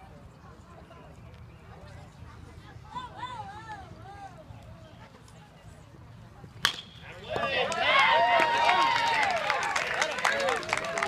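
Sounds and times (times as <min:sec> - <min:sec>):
bat cracking a ball: 0:06.6 - 0:07.9.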